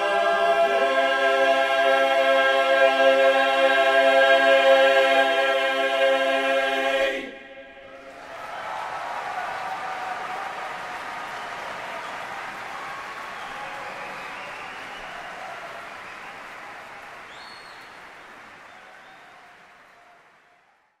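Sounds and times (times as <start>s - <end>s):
audience applauding and cheering: 7.9s - 21.0s
high whistle: 13.3s - 16.5s, 17.2s - 19.5s.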